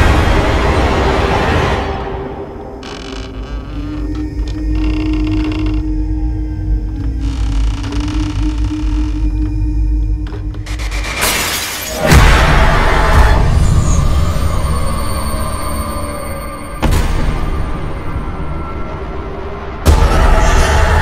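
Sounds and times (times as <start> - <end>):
deep low drone: 0.0 - 11.2
eerie textures: 0.0 - 21.0.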